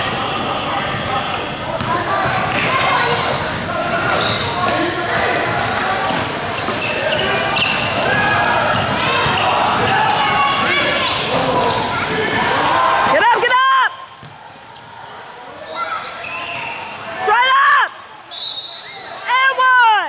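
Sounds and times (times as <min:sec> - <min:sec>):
sneakers squeaking on court: 0:00.8 - 0:12.2, 0:14.2 - 0:17.1.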